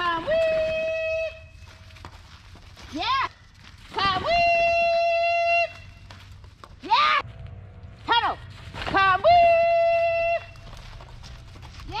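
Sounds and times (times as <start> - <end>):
dog running on packed dirt: 0.0 - 7.2, 8.4 - 12.0.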